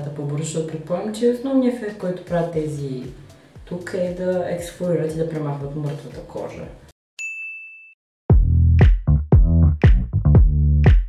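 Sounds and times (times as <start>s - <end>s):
high bell-like ding: 7.2s - 8.0s.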